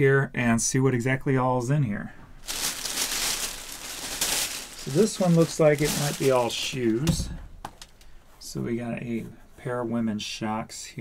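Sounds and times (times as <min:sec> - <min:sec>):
plastic bag rustling: 0:02.4 - 0:08.0.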